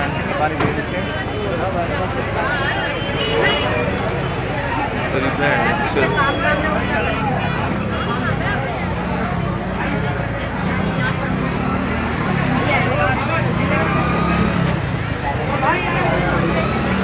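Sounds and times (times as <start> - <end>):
crowd talking: 0.0 - 17.0
vehicle engine running: 3.8 - 17.0.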